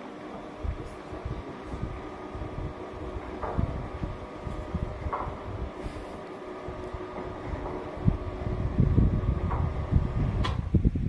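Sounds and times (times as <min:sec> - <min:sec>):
louver drive motor hum: 0:00.0 - 0:11.0
wind rumble on microphone: 0:00.6 - 0:11.0.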